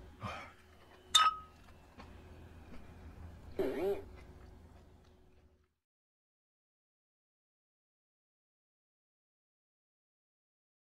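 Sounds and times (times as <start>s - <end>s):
faint steady hum: 0.0s - 5.8s.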